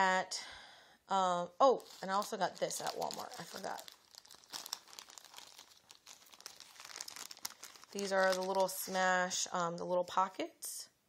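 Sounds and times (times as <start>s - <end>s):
plastic packaging crinkling: 1.7s - 9.1s.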